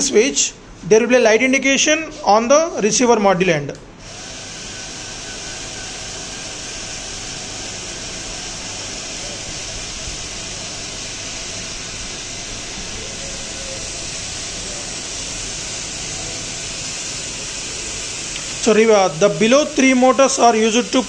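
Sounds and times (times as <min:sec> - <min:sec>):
gear motors whirring: 0:04.0 - 0:21.0.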